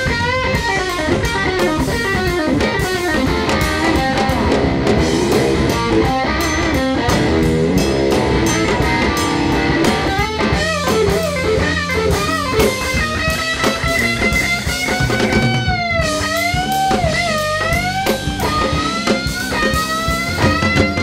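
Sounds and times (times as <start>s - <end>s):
drum kit: 0.0s - 21.0s
electric bass: 0.0s - 21.0s
electric guitar bending notes: 0.0s - 21.0s.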